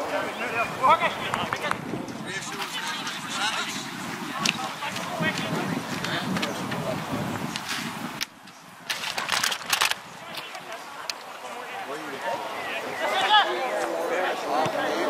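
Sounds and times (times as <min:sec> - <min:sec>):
footballers shouting calls: 0:00.0 - 0:07.3, 0:10.1 - 0:15.0.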